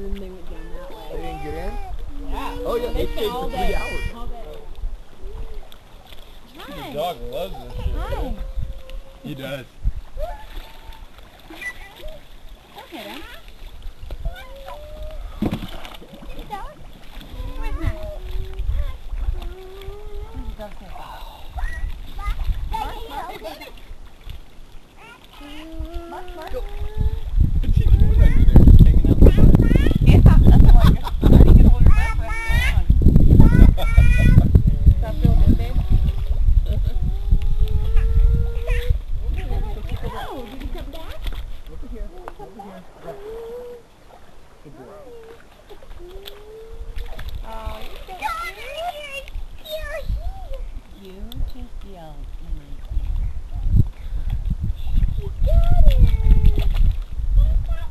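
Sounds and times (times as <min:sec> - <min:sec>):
water splashing: 0:00.0 - 0:57.9.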